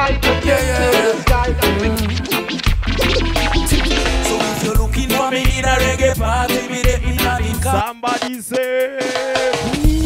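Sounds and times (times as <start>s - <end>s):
reggae music with heavy bass: 0.0s - 10.0s
record scratching: 0.9s - 5.8s.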